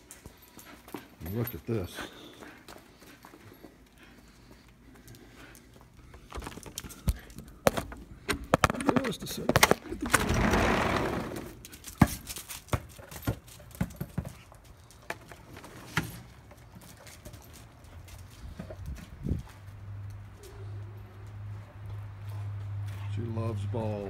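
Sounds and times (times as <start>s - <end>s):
handling noise: 6.1s - 17.8s.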